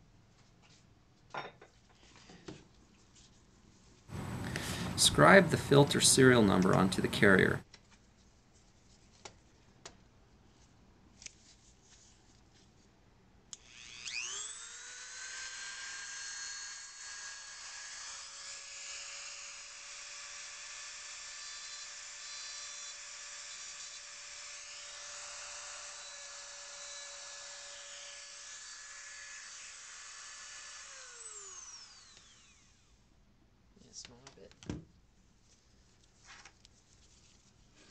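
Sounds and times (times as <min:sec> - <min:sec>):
rotary tool motor whining: 0:13.6 - 0:19.2, 0:23.8 - 0:33.0.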